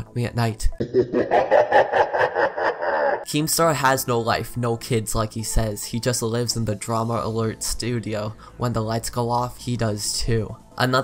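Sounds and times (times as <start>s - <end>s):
muffled person laughing: 0.8s - 3.3s.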